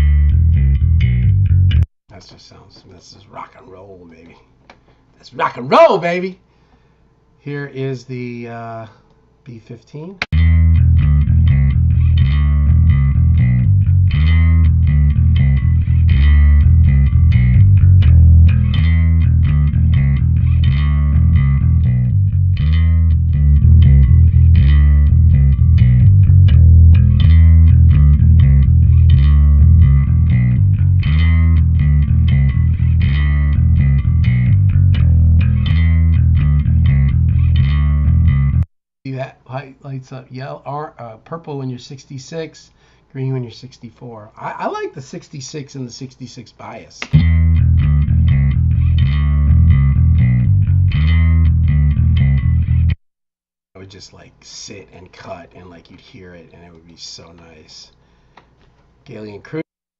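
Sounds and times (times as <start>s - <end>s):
electric bass notes: 0.0s - 1.9s, 10.3s - 38.7s, 47.1s - 53.0s.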